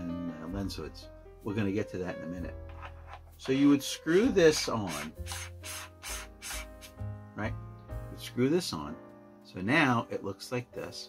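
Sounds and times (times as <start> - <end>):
soft background music: 0.0 - 11.0
lens attachment rubbing: 2.6 - 3.6.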